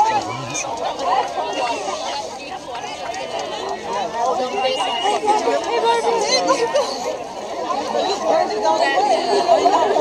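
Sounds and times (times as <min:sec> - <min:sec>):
crowd of students chattering: 0:00.0 - 0:10.0.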